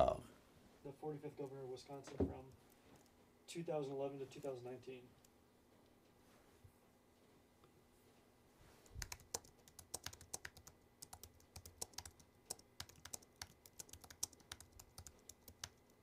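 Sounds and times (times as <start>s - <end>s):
computer keyboard typing: 8.9s - 16.0s.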